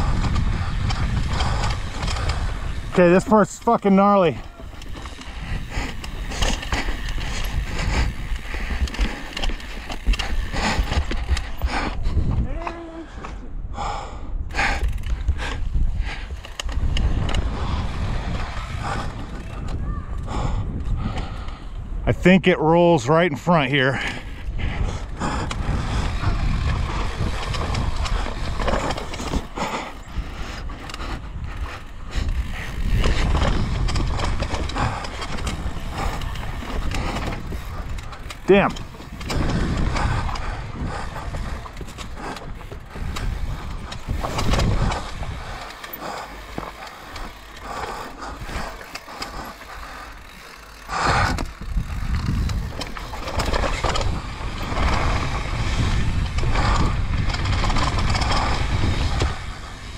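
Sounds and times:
bike chain and frame rattling: 0.0 - 13.2, 13.8 - 59.9
tyre and trail noise: 0.0 - 59.9.

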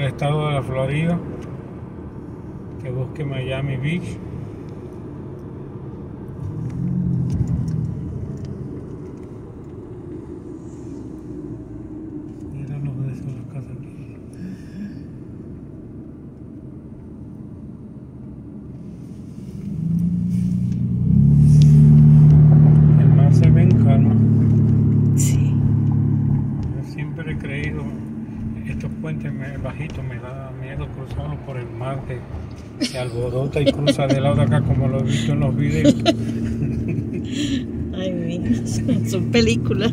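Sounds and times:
car road noise rumble: 0.0 - 39.9.

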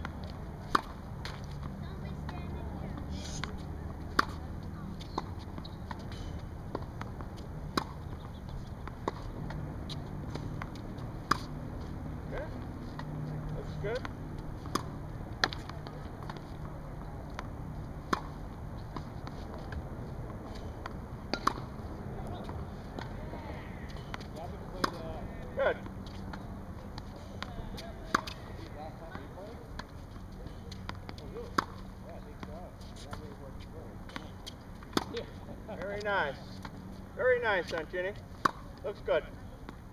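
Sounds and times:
tennis ball struck with racket: 0.0 - 1.6, 2.3 - 4.4, 5.1 - 8.1, 8.8 - 11.7, 12.3 - 16.7, 17.3 - 23.3, 23.9 - 25.0, 27.4 - 28.5, 30.7 - 31.8, 37.7 - 38.7.

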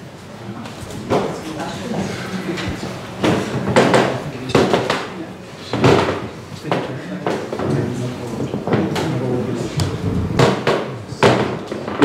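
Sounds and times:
microphone handling knocks: 0.8 - 1.6, 2.6 - 5.1, 5.7 - 12.0.

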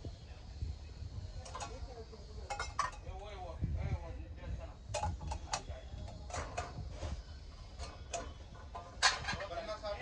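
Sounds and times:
metal containers clicking and knocking: 1.4 - 1.8, 2.4 - 3.2, 4.9 - 6.7, 7.8 - 9.6.

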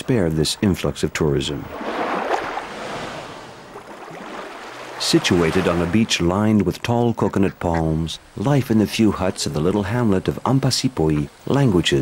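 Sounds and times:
sea waves washing: 0.0 - 12.0.

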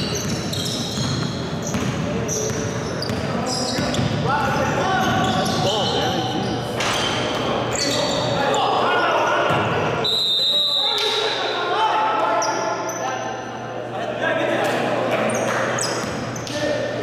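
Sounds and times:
basketball bouncing on court: 0.0 - 5.6.

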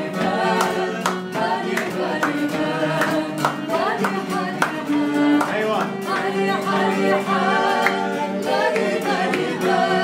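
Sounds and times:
group singing in unison: 0.0 - 10.0
violin playing: 0.0 - 10.0.

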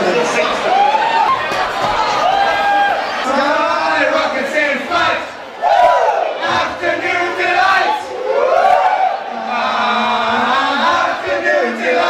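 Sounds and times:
audience shouting and cheering: 0.0 - 12.0.

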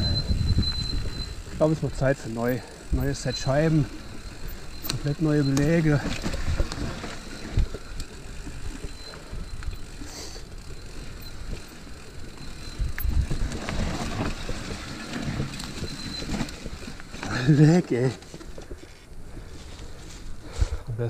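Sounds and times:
wind on microphone: 0.0 - 1.6
bike chain and frame rattling: 0.0 - 20.4
bike tyre noise on dirt: 0.0 - 21.0.

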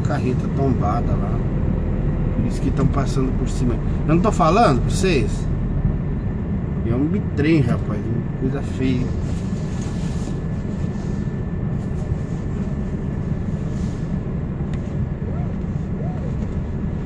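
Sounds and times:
truck engine rumble: 0.0 - 17.0.

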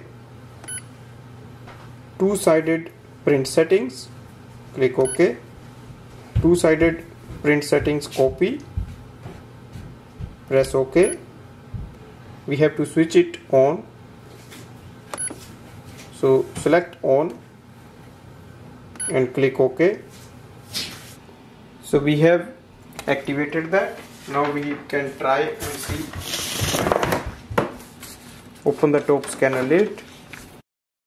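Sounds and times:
printer key-press beep: 0.6 - 0.9, 5.0 - 5.2, 15.1 - 15.4, 19.0 - 19.2
printer short electronic beep: 0.6 - 0.9, 19.0 - 19.2.

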